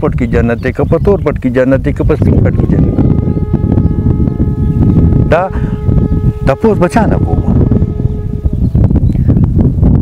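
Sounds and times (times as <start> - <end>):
hum of held tones: 2.2 - 9.5
rough low rumble: 2.2 - 10.0.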